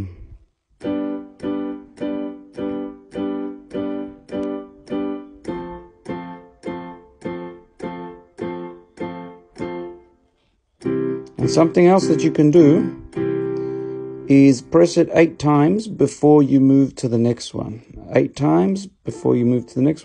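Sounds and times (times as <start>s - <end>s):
piano chords on electronic keyboard: 0.0s - 20.0s.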